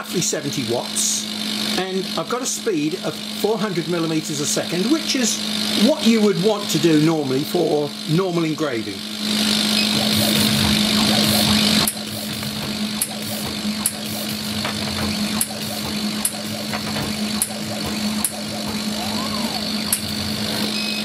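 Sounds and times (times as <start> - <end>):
laser engraver humming: 0.0 - 21.0.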